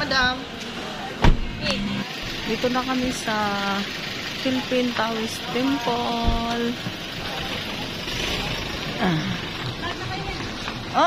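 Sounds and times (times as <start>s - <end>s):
people talking: 0.0s - 11.0s
loud low thump: 1.2s - 1.8s.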